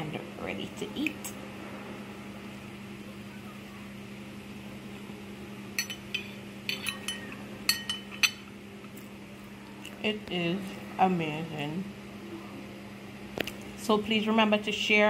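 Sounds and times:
steady low hum: 0.0s - 15.0s
fork clinking on ceramic plate: 5.8s - 8.5s.

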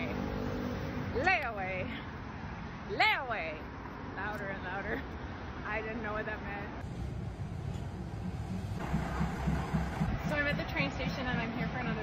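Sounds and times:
diesel train engine rumbling: 6.8s - 12.0s.

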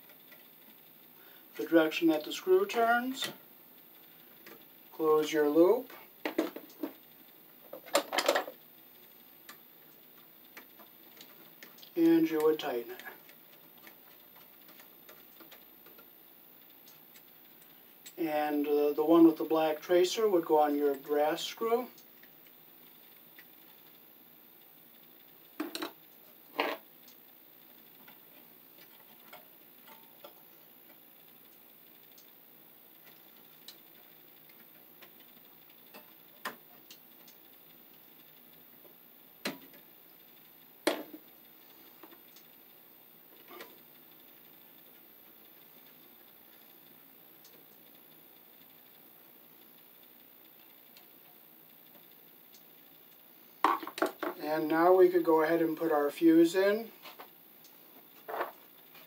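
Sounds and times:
small clicks and knocks of wiring: 6.2s - 7.0s, 7.6s - 18.2s, 25.1s - 32.4s, 33.0s - 42.7s, 57.0s - 59.0s.

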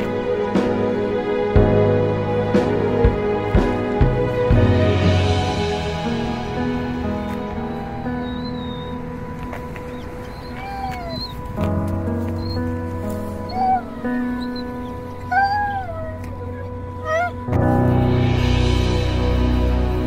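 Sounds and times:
background music: 0.0s - 20.0s
puppy whining: 6.4s - 18.2s.

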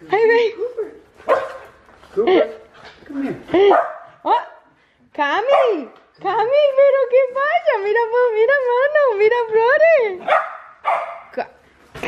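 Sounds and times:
dog barking excitedly: 1.2s - 1.8s, 3.6s - 4.2s, 5.4s - 6.0s, 10.2s - 11.3s.

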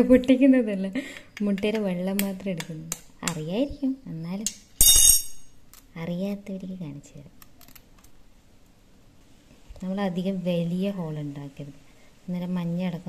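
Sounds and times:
steel spoon clinking: 4.5s - 5.6s.

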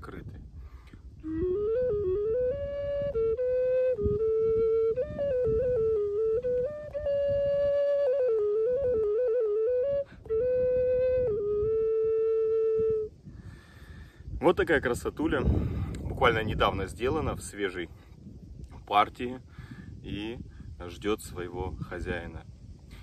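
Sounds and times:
ocarina melody: 1.1s - 13.2s.

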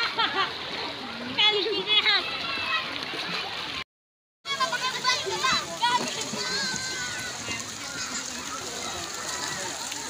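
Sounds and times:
water splashing in pool: 0.0s - 3.8s, 4.5s - 10.0s
children shouting: 2.0s - 3.8s, 4.5s - 10.0s.

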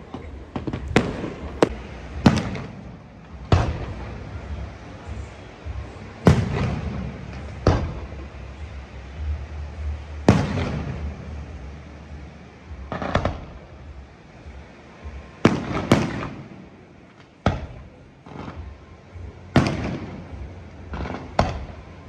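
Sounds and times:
fireworks bursting with sharp bangs: 0.0s - 22.0s.

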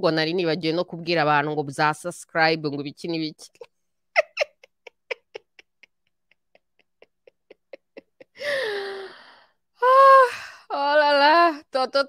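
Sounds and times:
woman chuckling: 4.1s - 8.7s.

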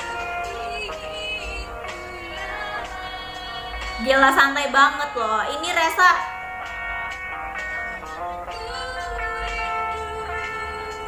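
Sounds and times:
high singing voice: 0.0s - 5.4s, 7.9s - 11.0s.

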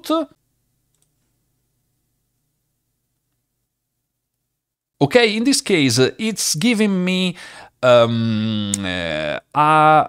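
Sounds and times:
person speaking: 0.0s - 0.4s, 5.0s - 10.0s.

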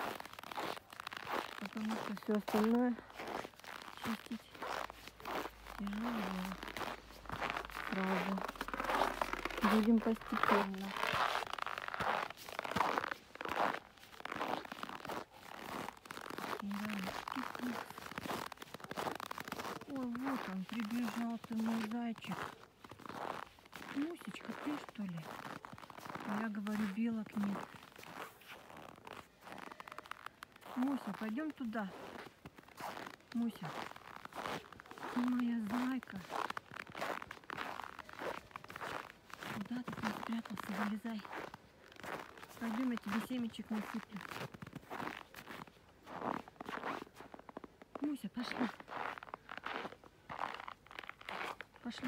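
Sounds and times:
footsteps crunching in snow: 0.0s - 52.0s.

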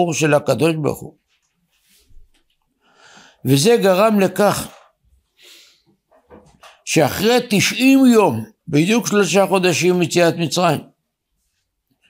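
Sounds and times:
man speaking: 0.0s - 1.2s, 3.4s - 4.9s, 6.8s - 11.0s
faint in-breath: 2.8s - 3.4s, 5.3s - 6.0s.

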